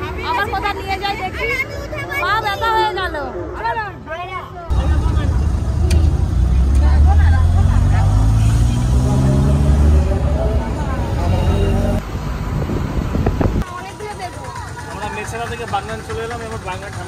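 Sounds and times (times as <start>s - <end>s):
car engine accelerating: 4.7s - 13.6s
road noise inside car: 4.7s - 13.7s.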